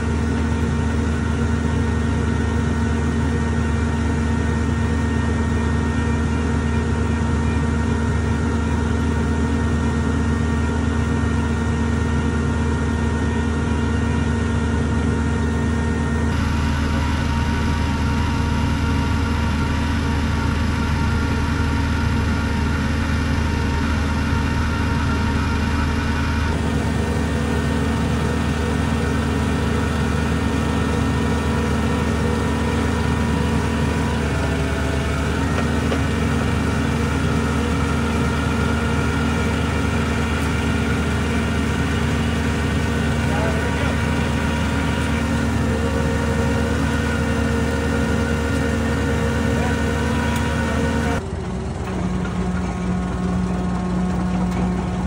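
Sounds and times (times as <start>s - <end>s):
drilling rig engine running: 0.0s - 55.0s.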